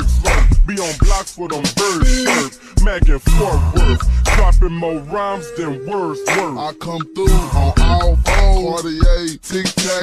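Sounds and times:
slowed rapping over bass beat: 0.0 - 10.0.

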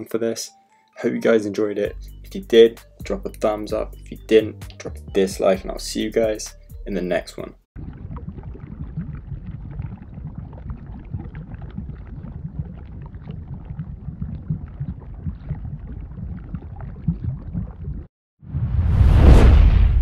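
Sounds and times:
low rumble with crackles and pops: 7.8 - 20.0
whoosh: 18.4 - 20.0.

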